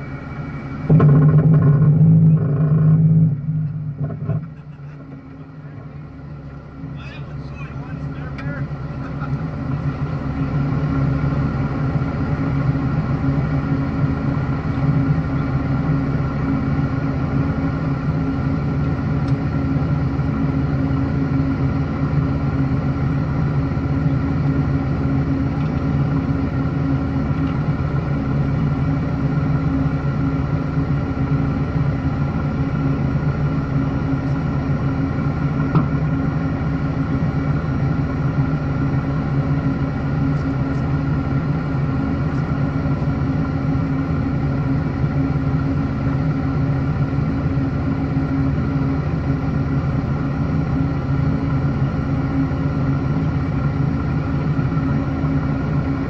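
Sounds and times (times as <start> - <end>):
vehicle engine running at low speed: 0.0 - 56.0.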